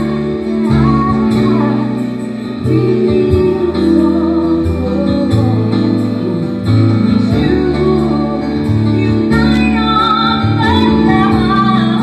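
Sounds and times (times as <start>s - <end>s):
jazz ballad by small band: 0.0s - 12.0s
keyboard chords: 0.0s - 12.0s.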